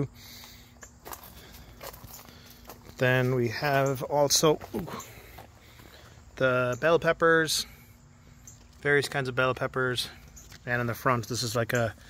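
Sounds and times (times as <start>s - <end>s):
faint steady hum: 0.0s - 12.0s
footsteps crunching on wood chips: 0.2s - 6.4s.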